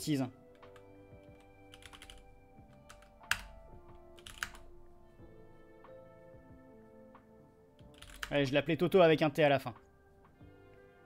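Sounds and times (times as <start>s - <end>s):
faint background music: 0.0s - 11.0s
computer keyboard typing: 0.5s - 4.7s, 7.8s - 8.4s.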